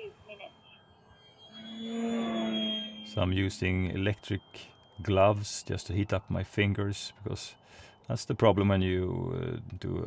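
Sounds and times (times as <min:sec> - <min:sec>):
model airplane motor whine: 0:01.2 - 0:03.2.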